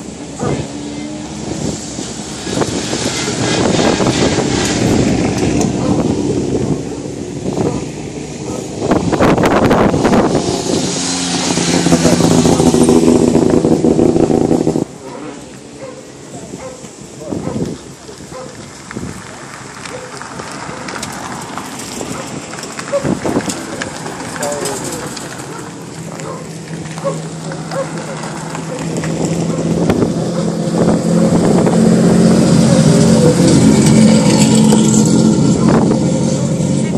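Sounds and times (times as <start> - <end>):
rally car engine speeding past: 0.0 - 16.0, 19.1 - 36.9.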